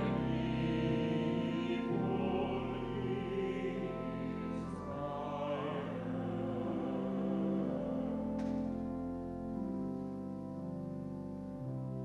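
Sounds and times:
choir singing: 0.0 - 8.9
organ sustained chord: 0.0 - 12.0.

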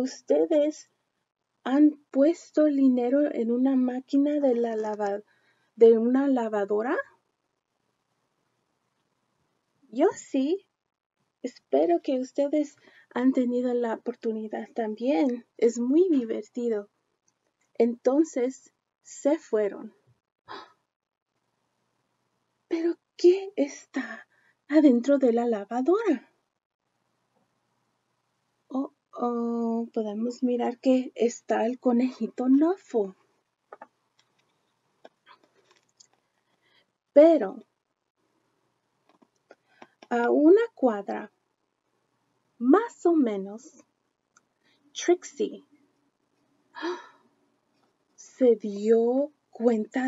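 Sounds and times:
woman breathing: 5.2 - 5.8, 12.8 - 13.1, 46.8 - 47.3
woman's soft breath: 46.8 - 47.3.

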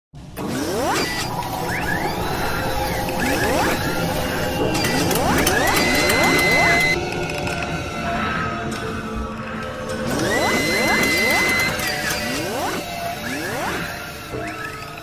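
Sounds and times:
music: 0.2 - 15.0.

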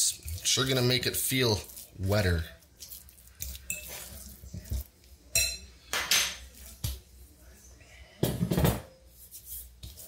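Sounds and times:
fork clinking on glass bowl: 3.4 - 4.1, 5.3 - 6.4.

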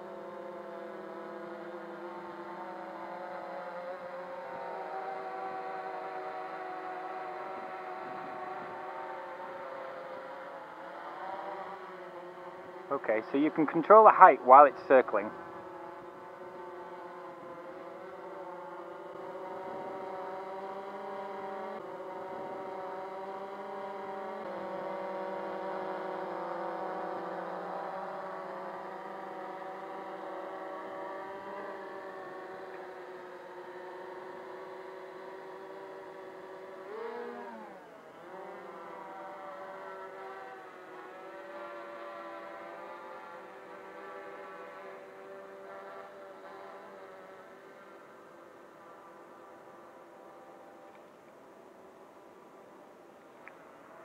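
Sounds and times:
quadcopter buzzing whine: 0.0 - 54.0.

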